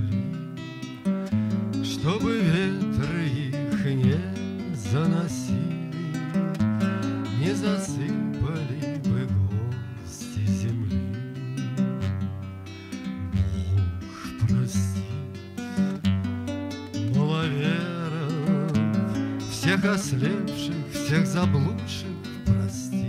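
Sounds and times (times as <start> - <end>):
man singing: 0.0 - 0.5, 1.7 - 11.6, 13.2 - 16.1, 16.9 - 23.0
acoustic guitar: 0.0 - 23.0.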